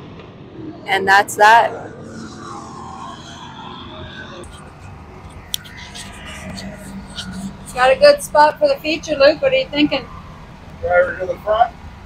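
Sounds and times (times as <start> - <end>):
steady low hum: 0.0 - 12.0
faint background voices: 0.9 - 11.7.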